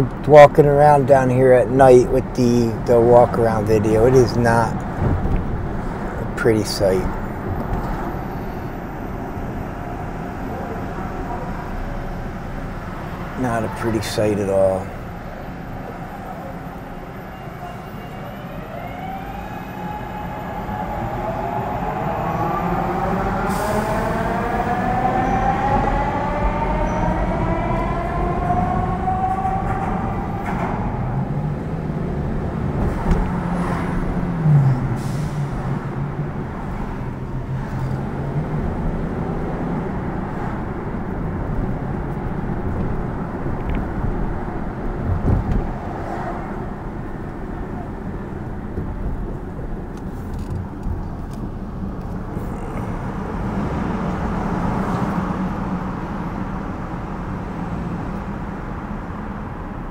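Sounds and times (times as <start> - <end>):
bus engine drone passing: 0.0 - 59.9
street traffic noise: 0.0 - 59.9.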